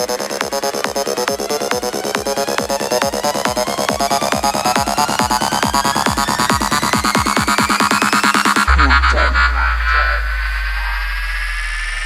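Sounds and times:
hissing synth sweep: 0.0 - 12.0
high tone gliding upward: 8.6 - 12.0
deep synth bass note: 8.7 - 12.0.

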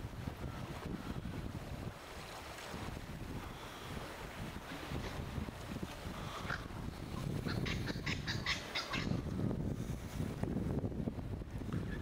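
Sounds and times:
wind rumble on microphone: 0.0 - 12.0.

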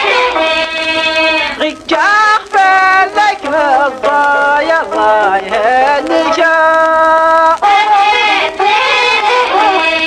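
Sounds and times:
person singing long held notes: 0.0 - 10.0
string accompaniment: 0.0 - 10.0.

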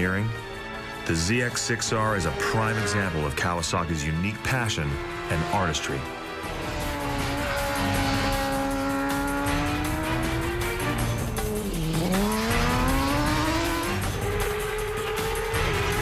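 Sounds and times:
background music: 0.0 - 16.0
motorcycle engine at high revs: 4.6 - 16.0.

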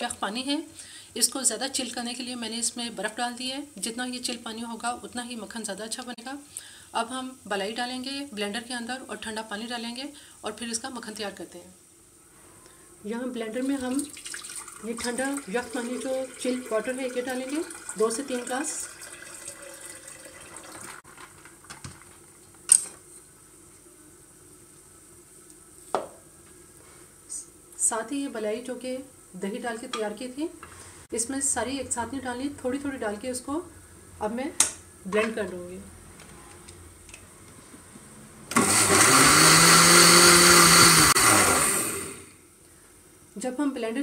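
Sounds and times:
water pouring into a blender jar: 13.9 - 21.4
electric blender running: 38.5 - 42.4.

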